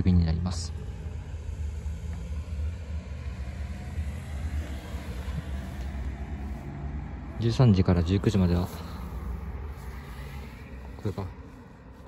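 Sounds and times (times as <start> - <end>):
low outdoor background rumble: 0.0 - 12.0.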